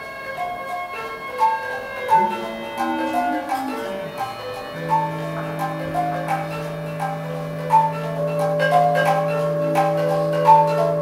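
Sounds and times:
bell-like struck notes: 0:00.0 - 0:11.0
steady low drone: 0:02.2 - 0:11.0.

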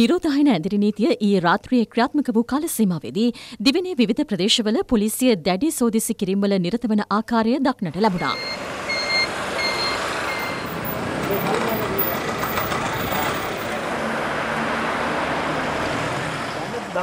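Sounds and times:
road traffic noise: 0:07.9 - 0:17.0
reversing beeper: 0:08.0 - 0:12.3
indistinct voices: 0:10.7 - 0:14.8.

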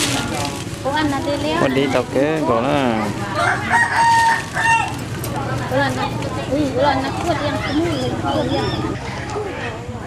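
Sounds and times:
rooster crowing: 0:03.4 - 0:05.0.

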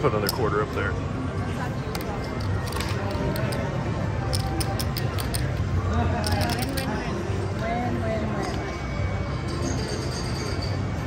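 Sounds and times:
background chatter: 0:00.0 - 0:11.0
background music: 0:00.0 - 0:11.0
casino chips clicking: 0:02.0 - 0:05.6, 0:06.2 - 0:07.1.

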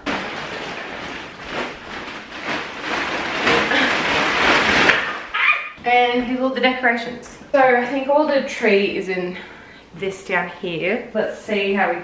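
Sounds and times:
plastic bag rustling and crinkling: 0:00.0 - 0:06.2.

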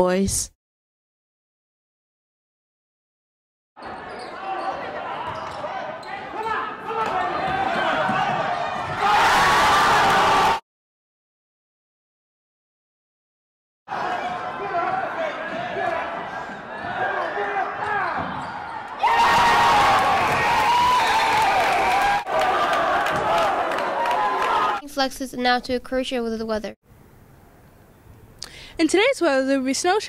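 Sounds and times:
spectators shouting: 0:03.8 - 0:10.6, 0:13.9 - 0:24.8.

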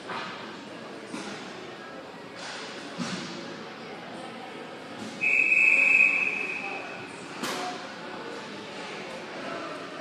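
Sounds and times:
referee's whistle blast: 0:05.2 - 0:06.8.

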